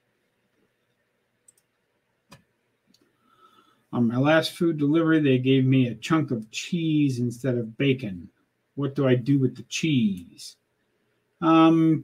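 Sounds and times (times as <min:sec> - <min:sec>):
faint quick clicks: 0:01.4 - 0:03.1.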